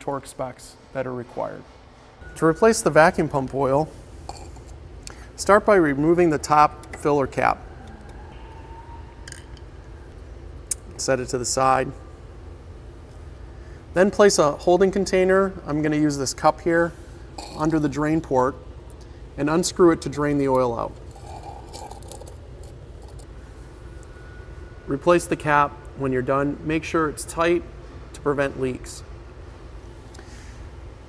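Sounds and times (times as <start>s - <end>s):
room hum: 0.0s - 31.0s
cap scraping: 21.0s - 23.2s.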